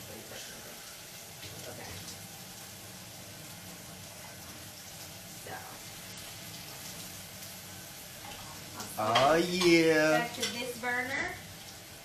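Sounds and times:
kitchen faucet running: 0.0 - 12.0.

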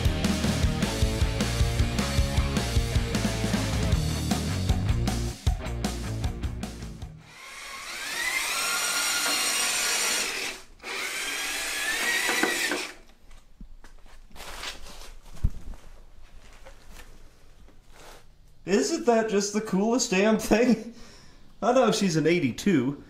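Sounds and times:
music: 0.0 - 7.3
electric motor whining: 7.3 - 13.0.

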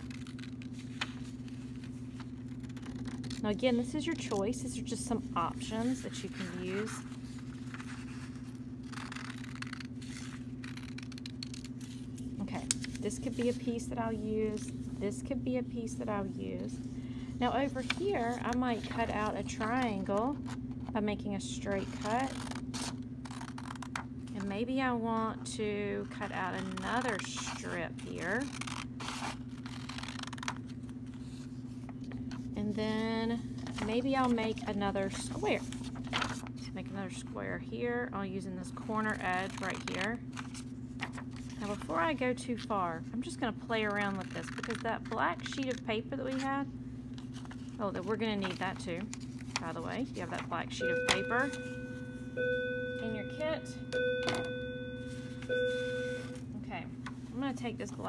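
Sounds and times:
steady low hum: 0.0 - 58.0
scissors cutting paper: 7.8 - 12.0, 21.7 - 24.5, 26.1 - 30.6, 39.1 - 42.0, 43.8 - 46.5.

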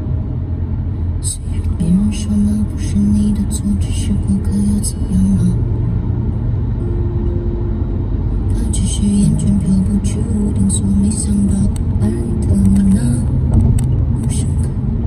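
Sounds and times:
car cabin road rumble: 0.0 - 15.0.

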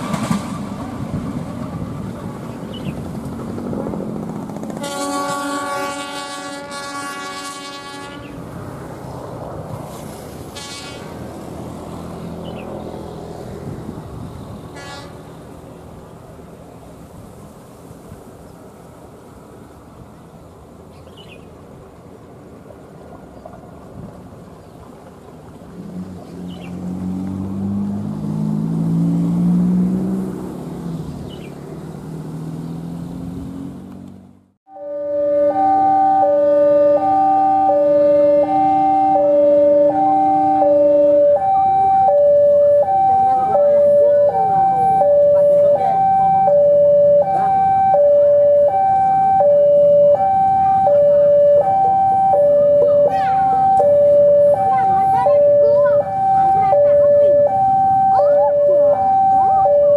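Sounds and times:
diesel locomotive engine: 0.0 - 59.9
two-tone electronic warning: 34.7 - 59.9.

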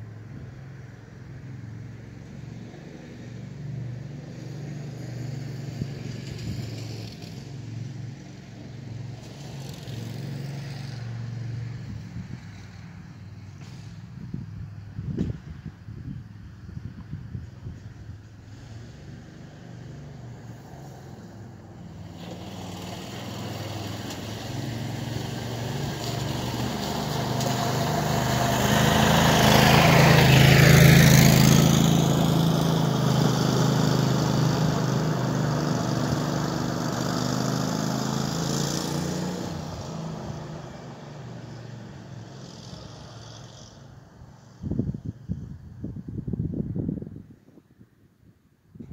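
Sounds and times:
vehicle engine driving past on gravel: 2.7 - 14.4, 18.3 - 44.8.

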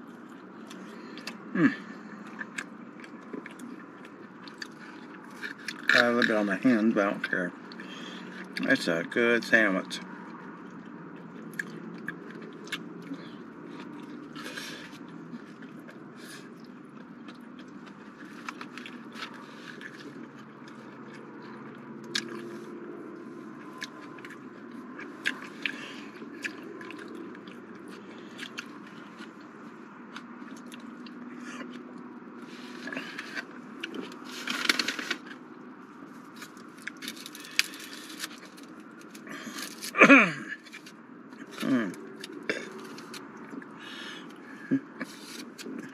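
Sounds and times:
person chewing: 0.0 - 6.5, 10.2 - 40.0, 40.6 - 45.9.

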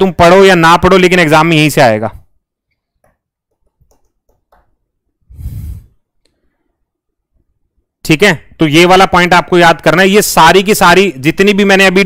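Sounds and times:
man breathing out into microphone: 5.3 - 6.8.

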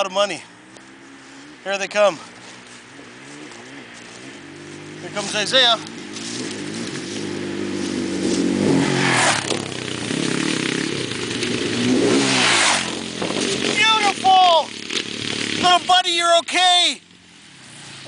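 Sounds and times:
off-road vehicle engine revving: 0.0 - 18.0
person calling out: 13.7 - 14.7.

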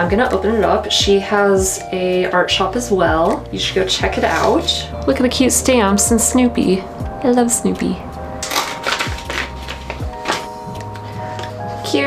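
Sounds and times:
paper envelope rustling: 8.4 - 11.8.

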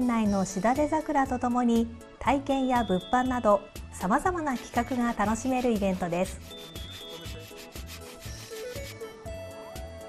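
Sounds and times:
background music with steady beat: 0.0 - 10.0
hand saw rasping through log: 4.5 - 9.0.

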